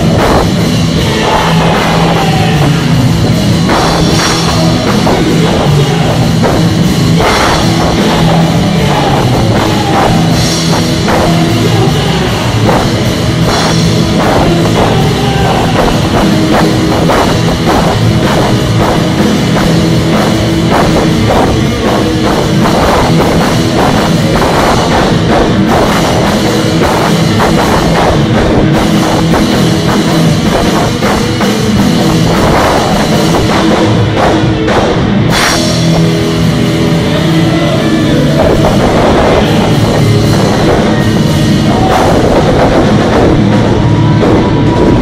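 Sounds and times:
cymbals: 0.0s - 45.0s
drum kit beat: 0.0s - 45.0s
electric guitars: 0.0s - 45.0s
live rock band: 0.0s - 45.0s.

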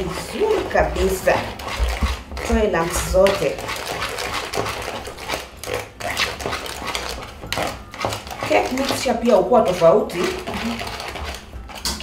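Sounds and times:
spatula scraping batter in bowl: 0.0s - 12.0s.

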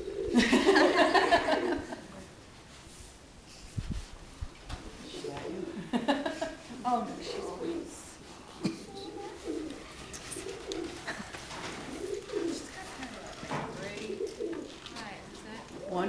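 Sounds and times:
birds cooing: 0.0s - 1.9s, 5.0s - 6.2s, 7.1s - 16.0s
murmuring voices: 6.7s - 16.0s.

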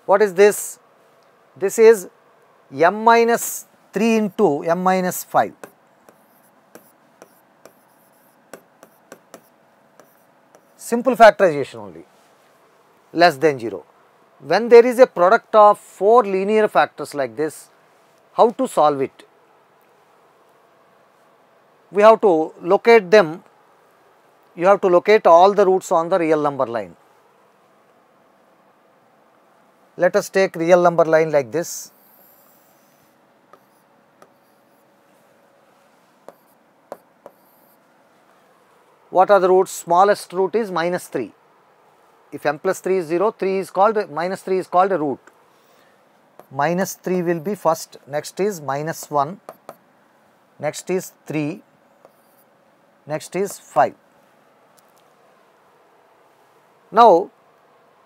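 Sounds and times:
marker rubbing on whiteboard: 5.1s - 11.0s, 31.9s - 34.9s, 36.2s - 37.8s, 48.9s - 49.8s, 52.0s - 52.5s
marker tip ticks: 5.6s - 10.8s, 36.3s - 37.7s, 49.5s - 49.8s.

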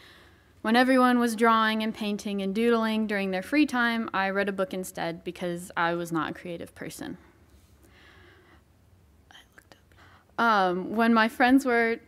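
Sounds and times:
faint breath: 0.0s - 0.6s, 7.2s - 8.7s, 9.9s - 10.4s.

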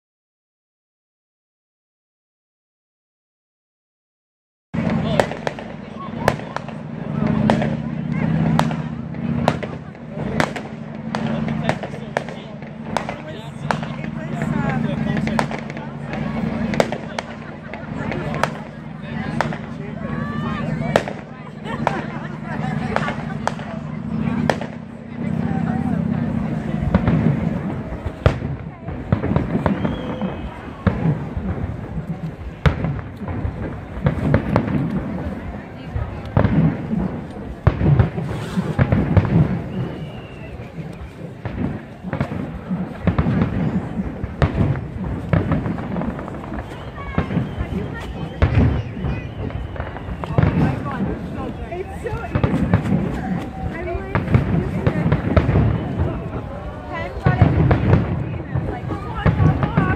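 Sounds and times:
fireworks bursting with sharp bangs: 4.8s - 59.9s
low rumbling: 4.8s - 59.9s.

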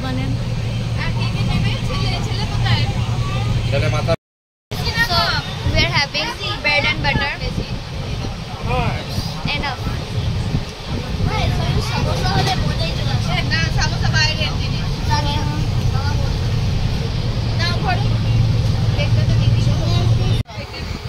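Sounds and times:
passengers chattering: 0.0s - 21.0s
train rumbling: 0.0s - 21.0s.

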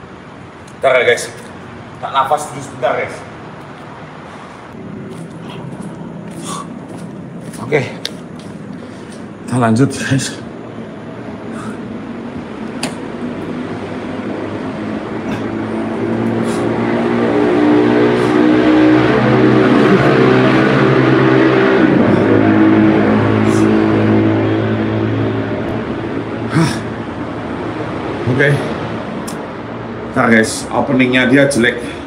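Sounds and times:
vehicle engine passing: 0.0s - 32.0s.

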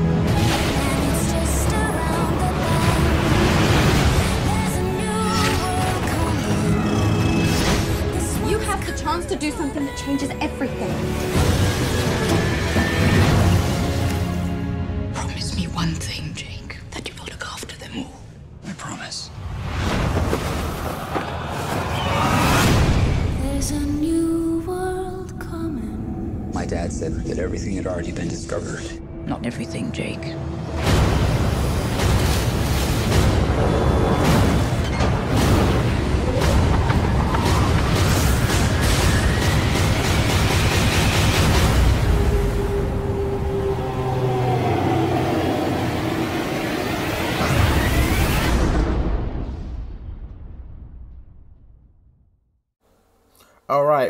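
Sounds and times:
soft whispered dialogue: 15.2s - 19.4s.

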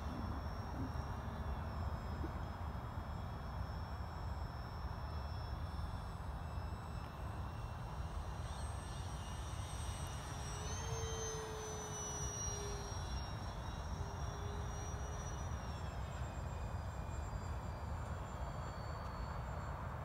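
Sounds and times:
model plane propeller whine: 0.0s - 20.0s.

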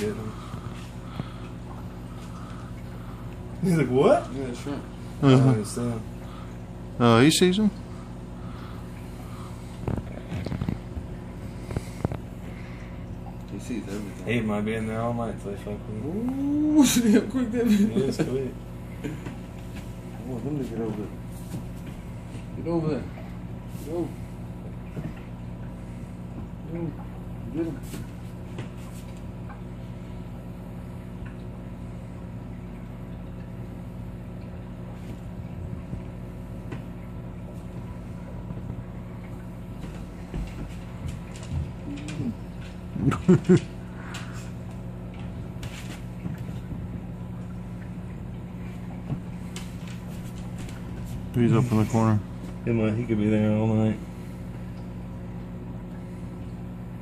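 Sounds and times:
aquarium equipment hum: 0.0s - 57.0s.

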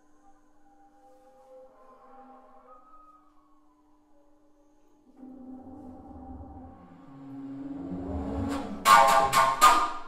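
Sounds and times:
bass flute low held tone: 0.2s - 10.0s.

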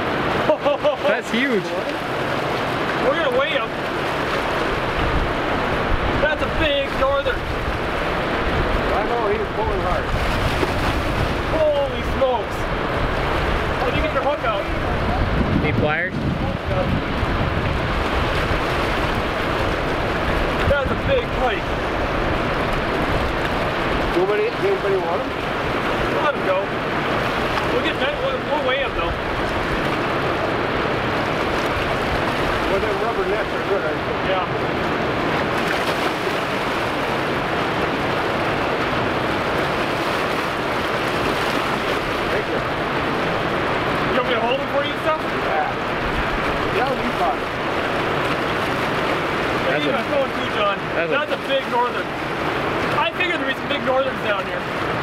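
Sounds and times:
whitewater rushing: 0.0s - 55.0s.

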